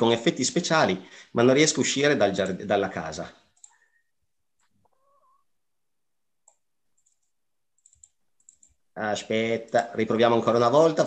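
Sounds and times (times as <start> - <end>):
computer mouse clicks: 6.4 - 8.8.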